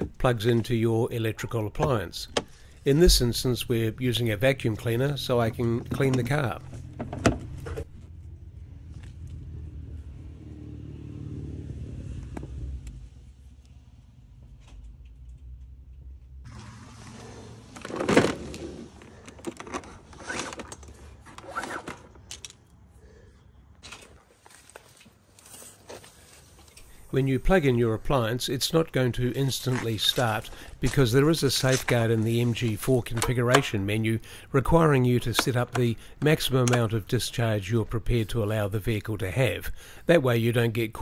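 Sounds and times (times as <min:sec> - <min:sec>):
plug and cable handling: 0:17.8 - 0:22.7, 0:31.6 - 0:33.8.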